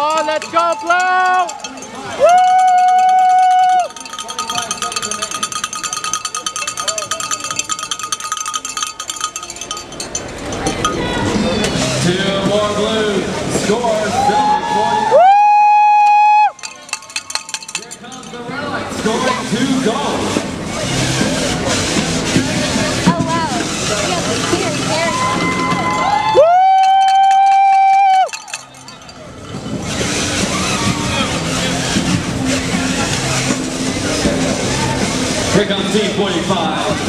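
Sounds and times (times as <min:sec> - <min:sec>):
hubbub of competition hall: 0:00.0 - 0:37.0
spectator cheering woo: 0:02.1 - 0:04.0, 0:14.1 - 0:16.6, 0:24.9 - 0:28.4.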